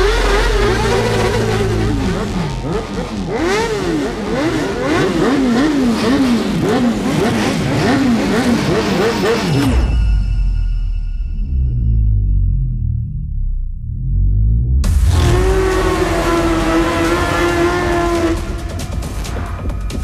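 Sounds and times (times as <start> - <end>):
motorcycle engine revving: 0.0 - 9.9, 14.8 - 19.5.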